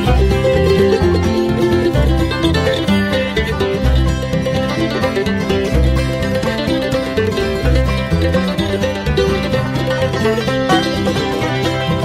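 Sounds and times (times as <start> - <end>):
banjo: 0.0 - 12.0
bluegrass band playing: 0.0 - 12.0
guitar: 0.0 - 12.0
mandolin: 0.0 - 12.0.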